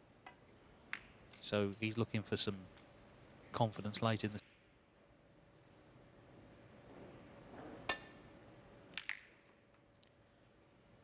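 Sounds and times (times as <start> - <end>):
snooker balls clicking: 8.9 - 10.0.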